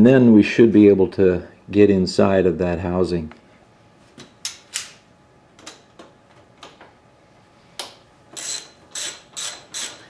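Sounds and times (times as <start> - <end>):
ratchet wrench clicking: 8.4 - 10.0.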